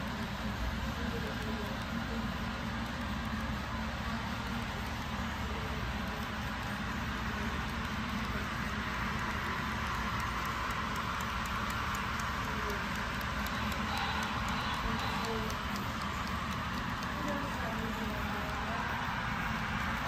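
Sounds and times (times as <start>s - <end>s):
model train wheels rumbling: 0.0s - 20.0s.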